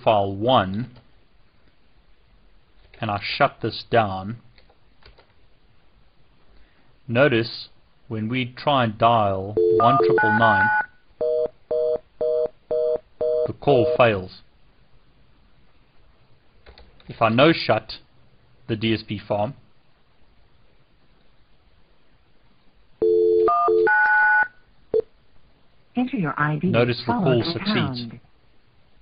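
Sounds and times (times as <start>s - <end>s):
fast busy tone beeping: 9.6s - 14.1s
dial tone: 23.0s - 24.5s.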